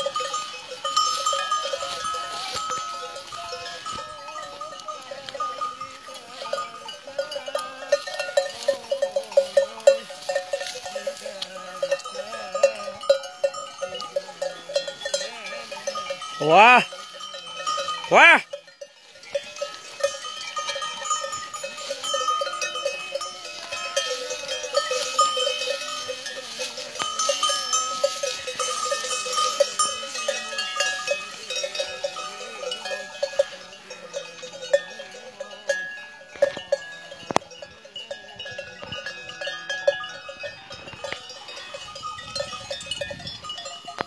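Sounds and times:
cattle bells clanking: 0.0 - 44.0.

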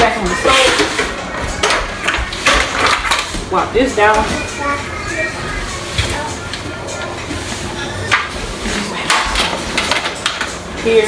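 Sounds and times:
dishes and pans clanking: 7.5 - 10.6.

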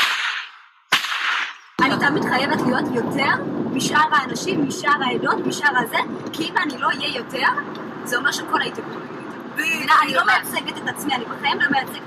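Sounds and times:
sharp cracks: 0.0 - 2.2
woman speaking: 1.8 - 12.0.

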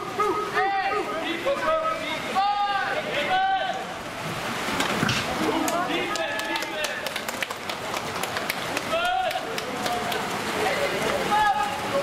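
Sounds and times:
voices shouting and calling out: 0.0 - 4.2, 5.3 - 7.3, 8.0 - 12.0
water splashing in a pool: 0.0 - 12.0.

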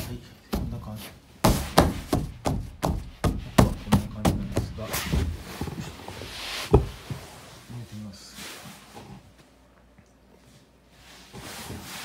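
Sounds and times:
hand slapping fabric cot: 1.4 - 5.3.

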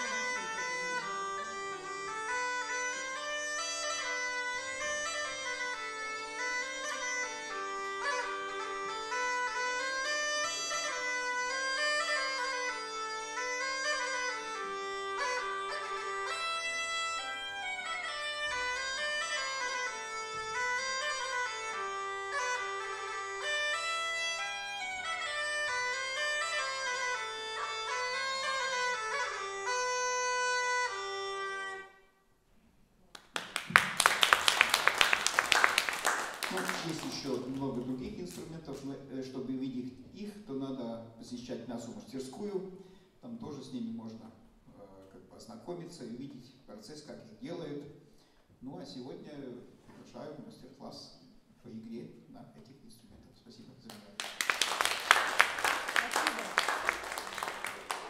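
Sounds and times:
bagpipe playing a tune: 0.0 - 32.2.

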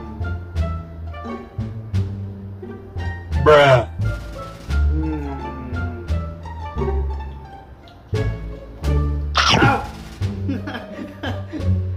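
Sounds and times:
plucked and bowed strings music: 5.1 - 9.6
sharp sound falling in pitch: 9.4 - 9.8.

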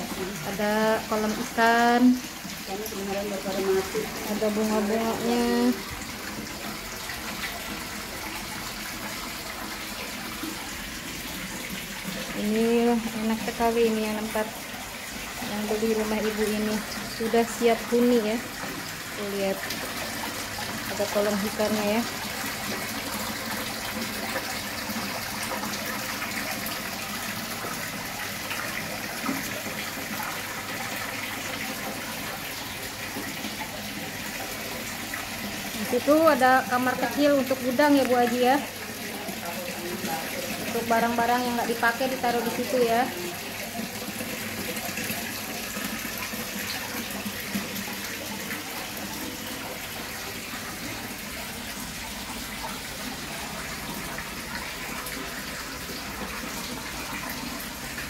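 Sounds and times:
water pouring into pond: 0.0 - 58.0.

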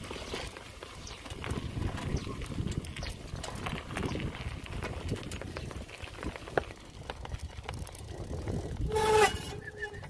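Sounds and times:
footsteps crunching on dirt: 0.0 - 8.0.

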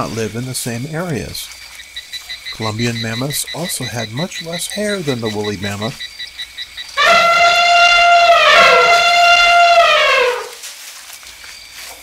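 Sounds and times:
elephant trumpeting: 7.0 - 10.6.

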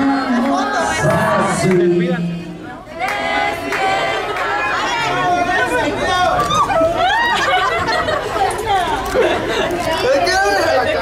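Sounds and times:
indistinct crowd chatter: 0.0 - 11.0.

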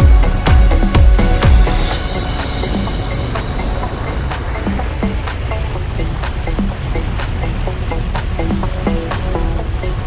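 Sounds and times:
rushing noise swell: 0.0 - 10.0
sustained synth line: 0.0 - 10.0.

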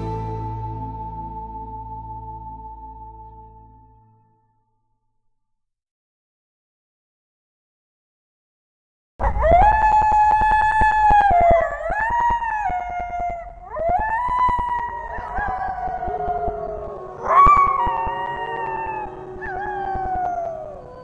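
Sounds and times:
wolves howling: 9.2 - 21.0.

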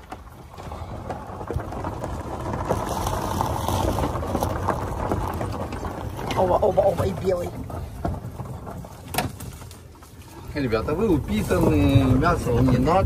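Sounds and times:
car rolling over dirt track: 0.0 - 13.0
small rattles and knocks: 0.0 - 13.0.

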